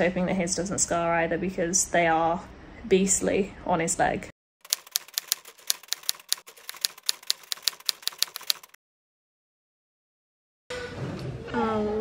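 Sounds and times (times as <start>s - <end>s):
typewriter key clacks: 4.7s - 8.8s.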